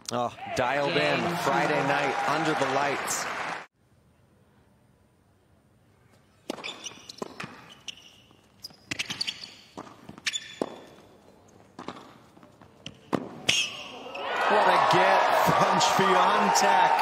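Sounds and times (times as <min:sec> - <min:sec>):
shoes squeaking on court: 0:06.1 - 0:14.3
tennis ball bouncing: 0:06.5 - 0:07.7, 0:08.9 - 0:11.1, 0:11.7 - 0:12.2, 0:12.8 - 0:13.7.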